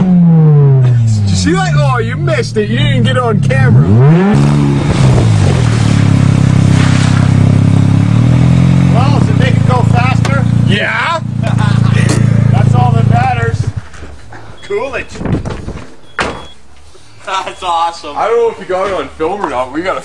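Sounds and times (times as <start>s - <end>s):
car engine revving hard: 0.0s - 1.6s, 2.8s - 13.9s.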